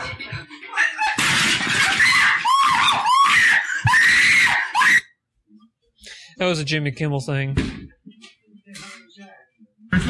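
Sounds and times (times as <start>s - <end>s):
girl screaming: 1.9s - 5.1s.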